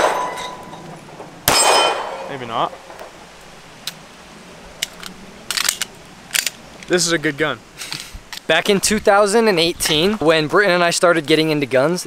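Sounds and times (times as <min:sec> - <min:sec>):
handgun clicks and rattles: 0:04.8 - 0:06.6.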